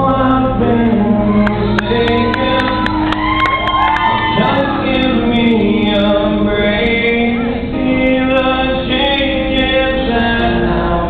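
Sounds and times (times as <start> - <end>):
man singing: 0.0 - 3.3, 4.1 - 11.0.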